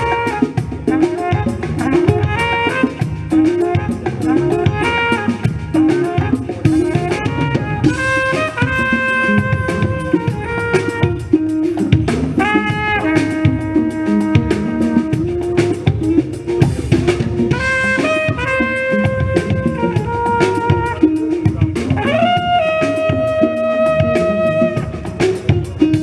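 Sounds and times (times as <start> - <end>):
flugelhorn melody: 0.0 - 26.0
jazz-funk band playing: 0.0 - 26.0.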